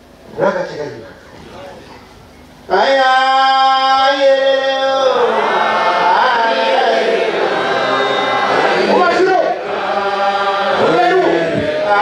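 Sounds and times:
congregation chanting a hymn: 2.7 - 12.0.

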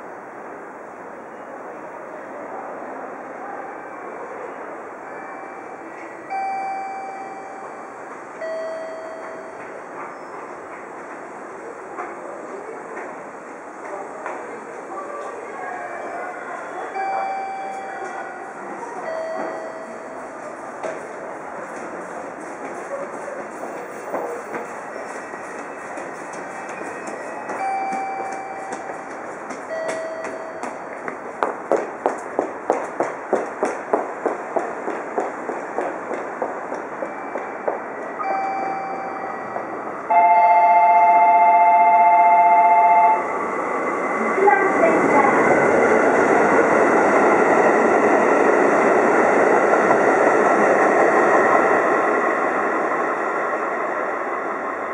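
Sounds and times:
diesel railcar running by: 0.0 - 54.9
train wheels clattering: 19.3 - 39.8
two-tone train horn: 40.1 - 43.3.

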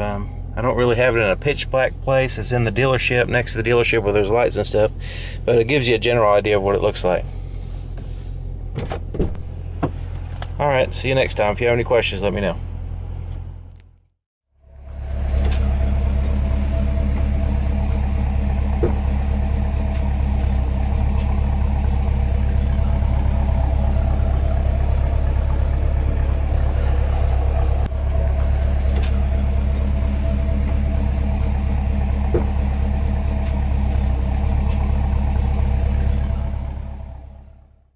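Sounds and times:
car engine idling: 0.0 - 14.0, 14.6 - 37.9.

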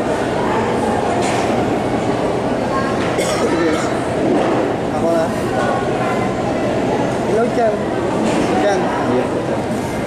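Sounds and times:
hubbub of many voices: 0.0 - 10.0.

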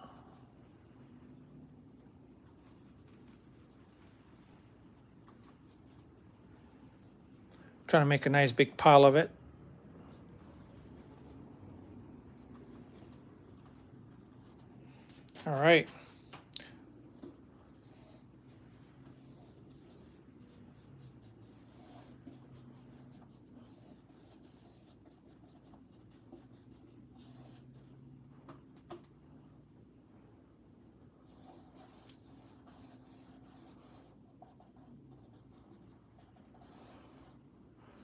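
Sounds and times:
paintbrush scratching on canvas: 2.6 - 4.2, 17.2 - 28.0, 31.2 - 37.4.

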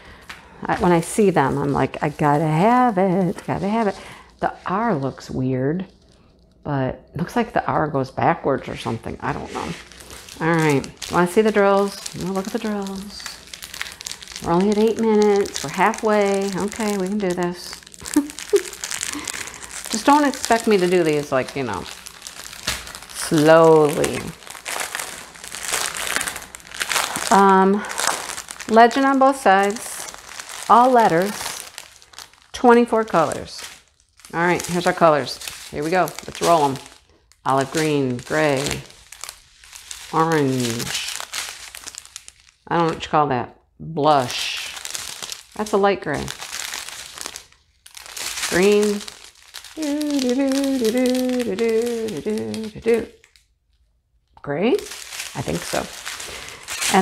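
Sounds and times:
plastic packaging crinkling: 0.0 - 6.6, 8.6 - 43.0, 44.1 - 53.9, 54.6 - 57.0
woman humming: 49.8 - 53.1.

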